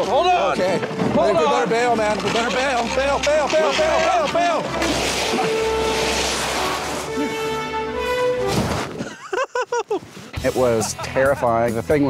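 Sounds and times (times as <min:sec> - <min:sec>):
toboggan rushing through snow: 0:00.0 - 0:11.3
snow spraying: 0:01.6 - 0:07.7, 0:08.4 - 0:11.2
background music with held notes: 0:02.6 - 0:09.0.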